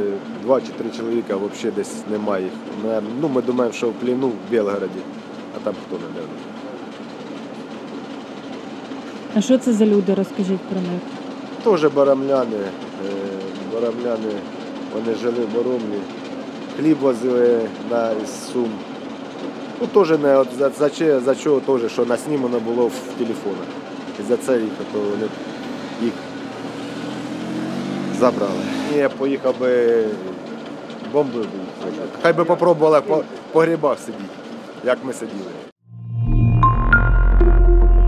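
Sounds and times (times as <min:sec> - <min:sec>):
man speaking: 0:00.0 - 0:05.0, 0:28.1 - 0:30.4
low engine hum: 0:00.0 - 0:33.4
train passing: 0:00.0 - 0:35.7.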